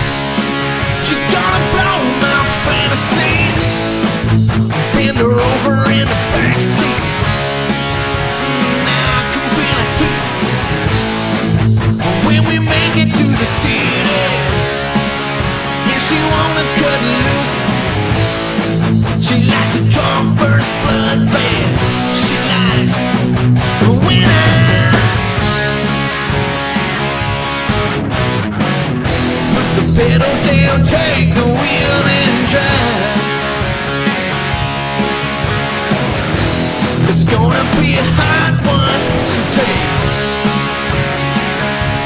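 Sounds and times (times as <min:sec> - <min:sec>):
electric guitar playing: 0:00.0 - 0:42.0
rock band playing: 0:00.0 - 0:42.0.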